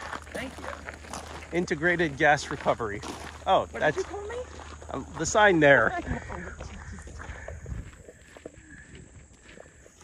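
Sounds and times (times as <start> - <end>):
footsteps walking outdoors: 0.0 - 10.0.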